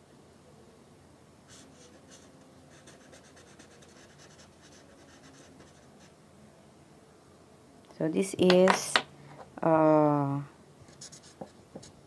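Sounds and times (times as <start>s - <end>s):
marker scribbling on paper: 1.5s - 6.1s, 10.9s - 12.0s.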